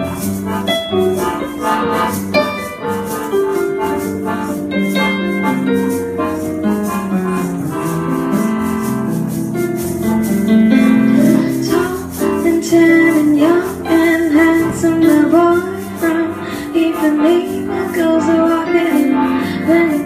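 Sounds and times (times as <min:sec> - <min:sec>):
bossa nova on accordion and keyboard: 0:00.0 - 0:20.0
woman singing: 0:11.2 - 0:20.0.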